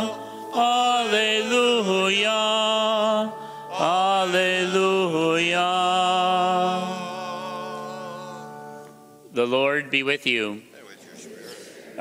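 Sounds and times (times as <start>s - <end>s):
sustained choral singing: 0.0s - 9.2s.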